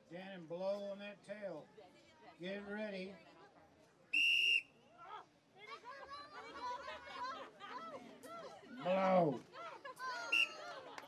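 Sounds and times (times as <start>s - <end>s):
crowd chatter: 1.2s - 11.0s
short high-pitched whistle blast: 4.2s - 4.6s.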